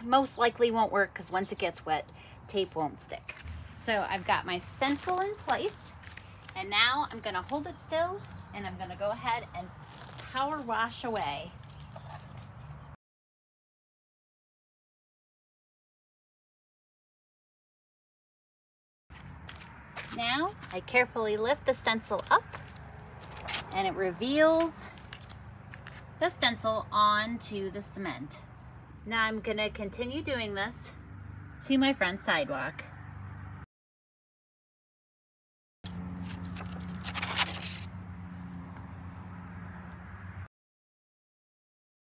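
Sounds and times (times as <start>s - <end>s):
outdoor background rumble: 0.0s - 13.0s, 19.1s - 33.7s, 35.9s - 40.5s
vinyl stencil peeled off concrete: 36.3s - 37.9s.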